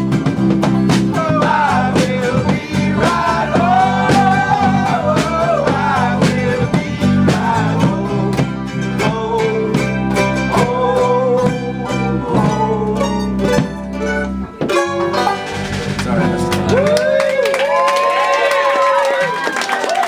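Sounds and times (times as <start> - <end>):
band with guitars and group singing: 0.0 - 17.2
voices whooping: 16.5 - 20.0.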